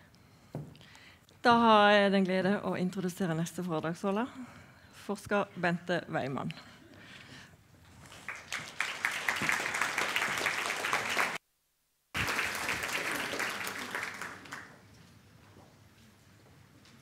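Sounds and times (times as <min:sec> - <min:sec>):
audience applauding: 0:08.1 - 0:11.4, 0:12.2 - 0:14.8.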